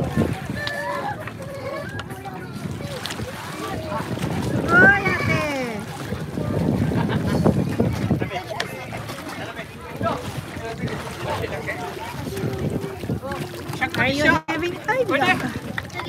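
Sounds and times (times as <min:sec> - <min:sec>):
voices calling: 0:00.0 - 0:16.0
water splashing: 0:00.0 - 0:16.0
wind on microphone: 0:00.0 - 0:16.0.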